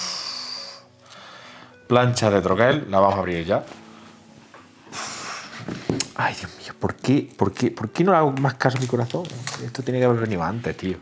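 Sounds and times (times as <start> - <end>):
sharp breath out: 0.0 - 1.8, 4.9 - 5.7.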